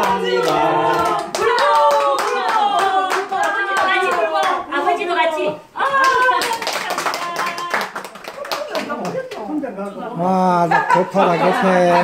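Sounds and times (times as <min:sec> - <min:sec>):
people clapping: 0:00.0 - 0:04.7, 0:05.8 - 0:09.6.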